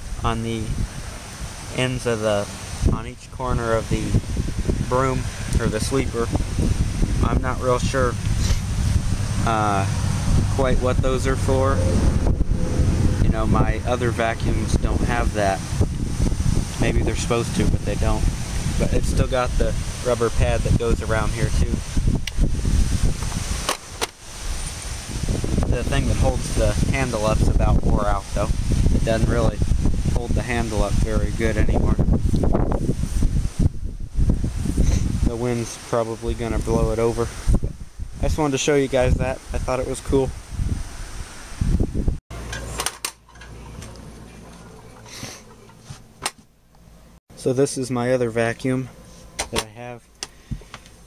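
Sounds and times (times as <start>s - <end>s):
wind buffeting microphone: 0.0s - 1.6s, 2.6s - 23.7s, 24.3s - 42.2s
low steady hum: 42.4s - 51.0s.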